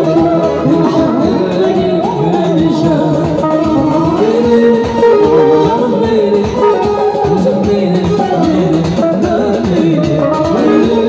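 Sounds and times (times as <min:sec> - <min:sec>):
synthesizer melody: 0:00.0 - 0:09.0
steady drum beat: 0:00.0 - 0:11.0.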